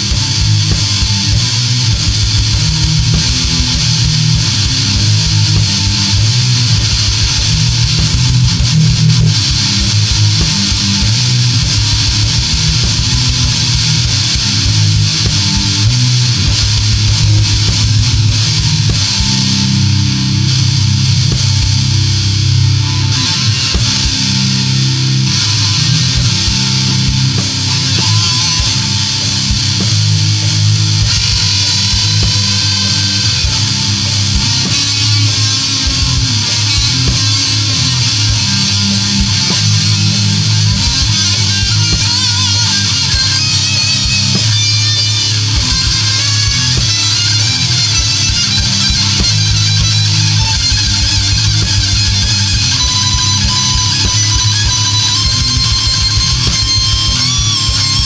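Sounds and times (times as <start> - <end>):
distorted electric guitars: 0.0 - 58.0
drum machine kick pattern: 0.0 - 58.0.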